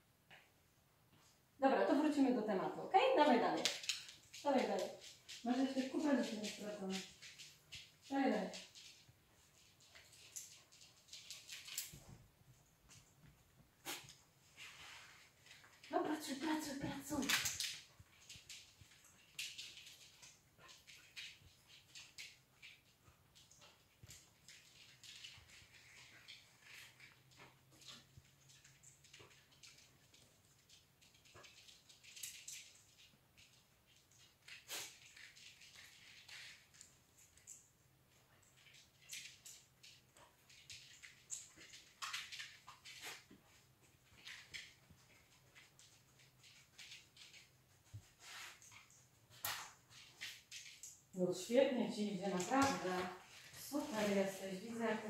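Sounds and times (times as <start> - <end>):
small movement noises: 0.0 - 55.0.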